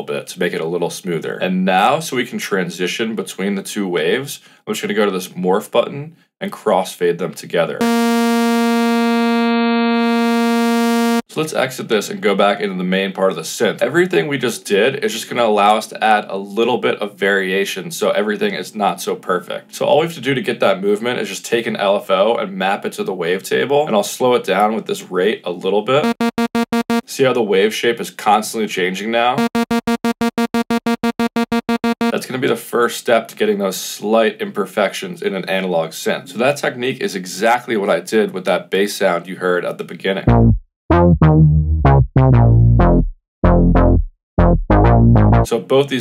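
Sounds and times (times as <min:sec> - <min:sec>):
synthesizer saw-wave note: 0:07.8 - 0:11.3, 0:26.0 - 0:27.1, 0:29.4 - 0:32.2, 0:40.3 - 0:45.5.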